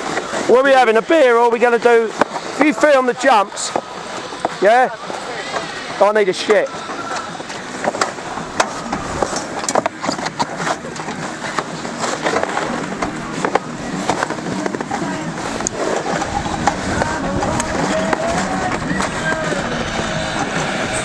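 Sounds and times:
chairlift chair arriving: 0.0s - 21.0s
snowboards clattering and scraping: 0.0s - 21.0s.

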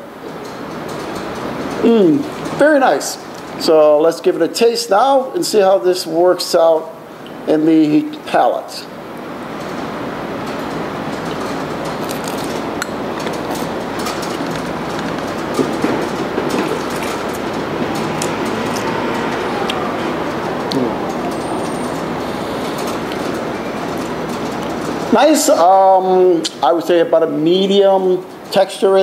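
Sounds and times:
steady rumbling: 13.5s - 25.4s
faint squealing glides: 15.7s - 24.4s.

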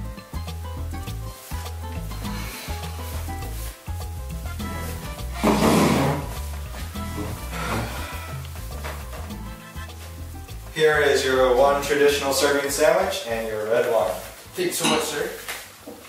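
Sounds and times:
melodic music with bass line: 0.0s - 15.5s
wooden chair scraping on floor: 4.5s - 10.2s.

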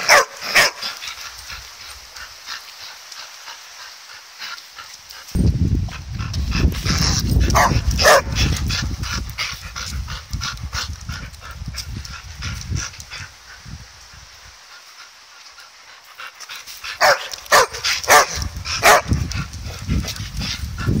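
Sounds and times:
dog barking: 0.0s - 0.8s, 7.5s - 8.4s, 17.0s - 19.1s.

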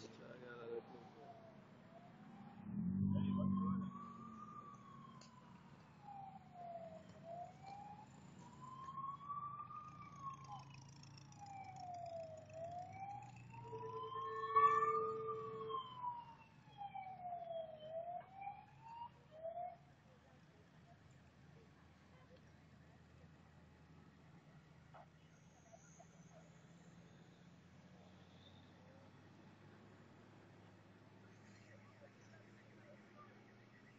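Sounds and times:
emergency vehicle siren wailing: 0.0s - 20.5s, 30.6s - 33.9s.

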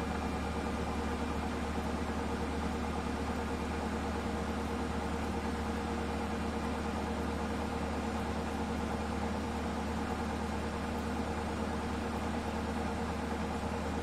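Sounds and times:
washing machine spinning: 0.0s - 14.0s.

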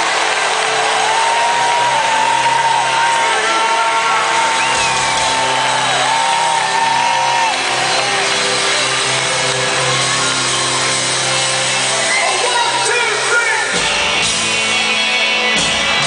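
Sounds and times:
live rock band playing: 3.9s - 16.0s.

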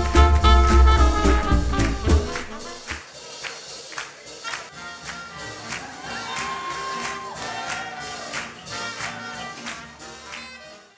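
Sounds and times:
swing jazz band music: 0.0s - 10.9s.

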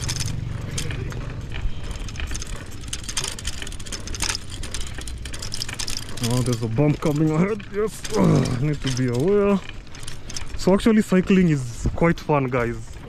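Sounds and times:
bicycle tyres rolling on gravel: 0.0s - 13.0s
bike clicking and rattling: 0.0s - 13.0s.

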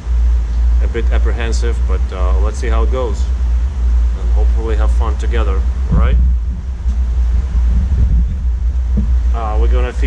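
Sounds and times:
steady low rumble: 0.0s - 10.0s
man speaking: 0.8s - 3.4s, 4.1s - 6.2s, 9.3s - 10.0s.

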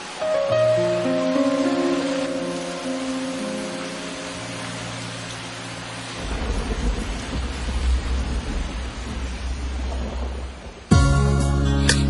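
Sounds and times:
rain hiss: 0.0s - 12.0s
thunder rumbling: 0.1s - 11.6s.

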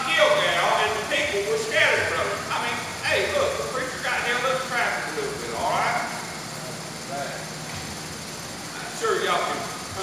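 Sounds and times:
man preaching: 0.0s - 6.1s
steady hall hum: 0.0s - 10.0s.

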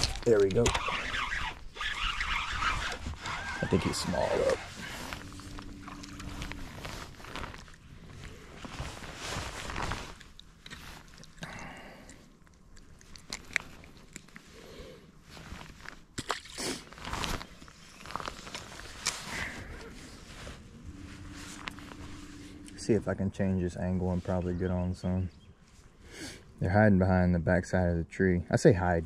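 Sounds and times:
low steady hum: 2.4s - 16.6s, 17.4s - 29.0s.

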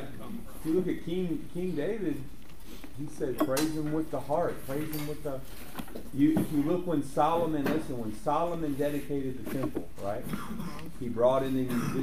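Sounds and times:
man talking: 0.0s - 2.3s, 3.0s - 5.5s, 6.1s - 12.0s.

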